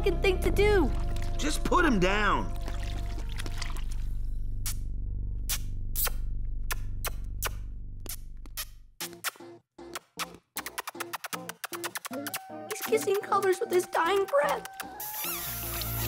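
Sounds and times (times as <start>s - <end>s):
soft wet kiss-like pops: 5.5s - 13.0s, 14.6s - 16.0s.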